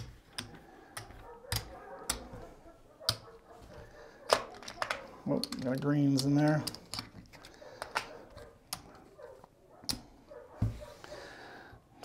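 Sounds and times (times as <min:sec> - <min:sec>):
casino chips clicking: 0:04.3 - 0:08.1.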